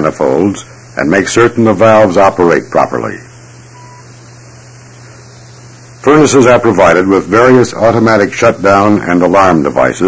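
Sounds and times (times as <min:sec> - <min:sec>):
even hiss: 0:00.0 - 0:10.0
low electrical hum: 0:00.0 - 0:10.0.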